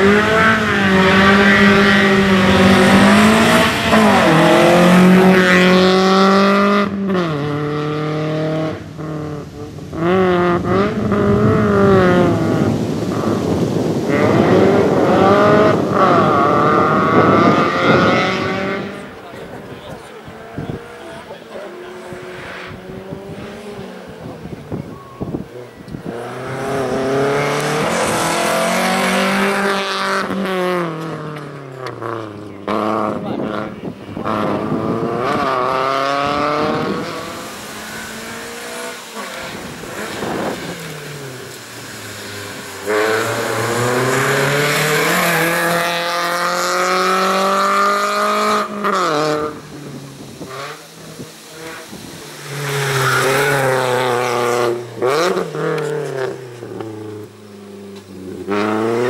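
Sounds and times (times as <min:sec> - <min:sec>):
race car engine revving hard: 0:00.0 - 0:59.0.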